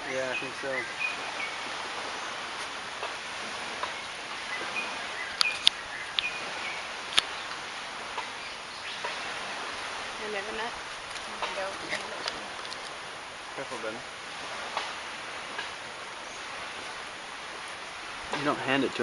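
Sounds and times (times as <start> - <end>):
faint bird chirps: 0.0 - 2.5, 3.8 - 7.6
outdoor background noise: 0.0 - 19.0
sharp clicks: 5.3 - 6.3, 7.0 - 7.6.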